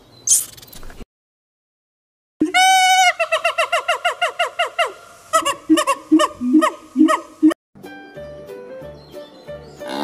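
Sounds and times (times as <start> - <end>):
high pitched primate calls: 2.5 - 7.6.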